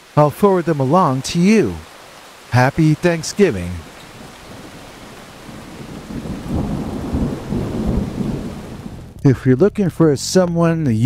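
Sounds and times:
steady rain: 0.0s - 9.3s
thunder rolling: 2.7s - 9.2s.

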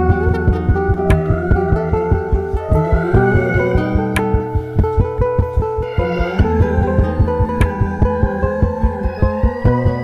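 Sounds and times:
guitar plucking quick notes: 0.0s - 10.0s
low sustained bass: 0.0s - 10.0s.

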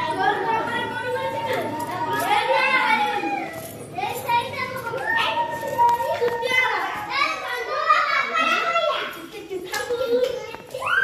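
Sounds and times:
children talking and calling out: 0.0s - 11.0s.

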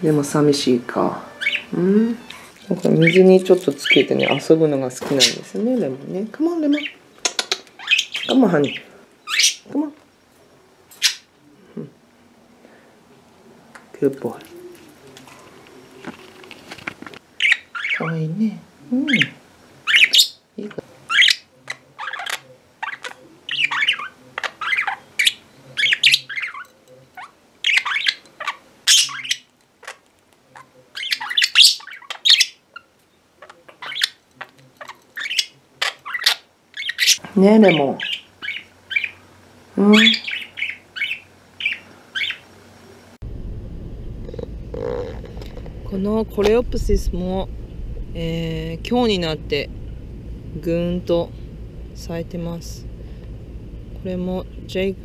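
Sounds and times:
budgerigar chirping: 1.3s - 4.5s, 6.7s - 9.7s, 21.1s - 29.5s, 31.0s - 34.2s, 34.8s - 39.2s, 40.0s - 42.4s
low outdoor rumble: 42.5s - 55.0s.

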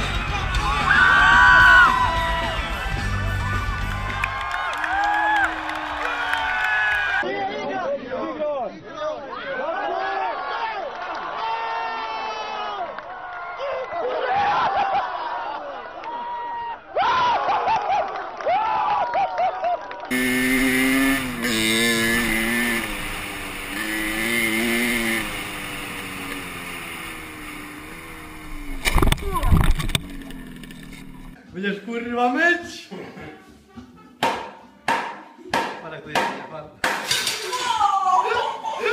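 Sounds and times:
voices shouting: 0.0s - 7.3s
dirt bike engine revving: 20.1s - 31.4s.

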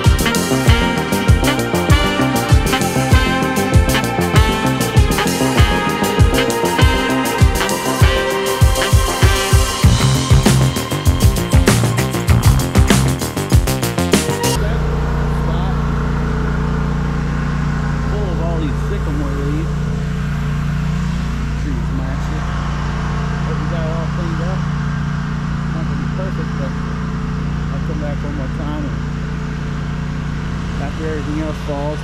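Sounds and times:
music: 0.0s - 16.1s
mower engine running: 0.0s - 32.0s.

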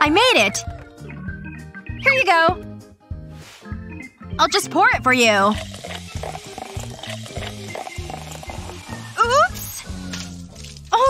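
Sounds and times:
background music with bass line: 0.0s - 11.0s
drink fizzing: 5.3s - 11.0s
cola pouring into glass of ice: 5.5s - 9.2s.

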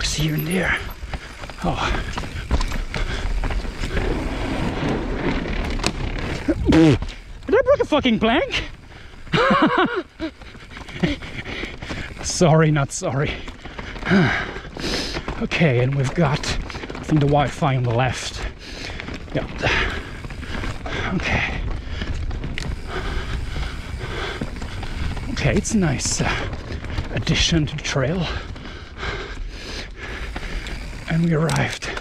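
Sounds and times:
wind rumbling on microphone: 0.0s - 17.6s, 18.4s - 31.7s
bike tyres rolling over dirt: 0.0s - 32.0s
man laughing: 9.3s - 10.4s.

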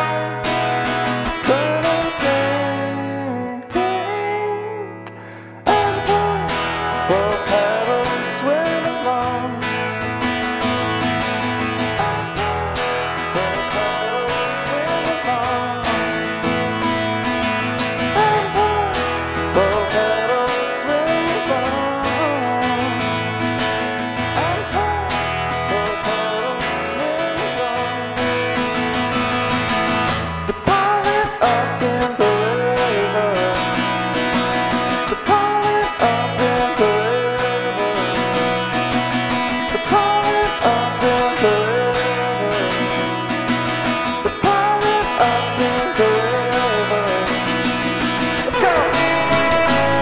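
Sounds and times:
acoustic guitar strumming: 0.0s - 50.0s
deep bass part: 48.3s - 50.0s
sliding melody line: 48.4s - 50.0s.

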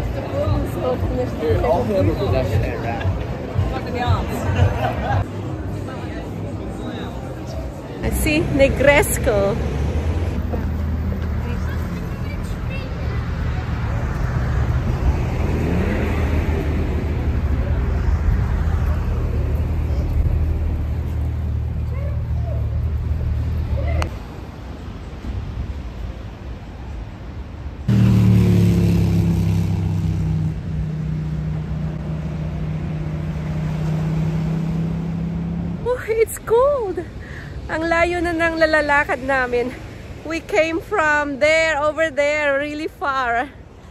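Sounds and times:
road vehicle engine hum: 0.0s - 43.9s.

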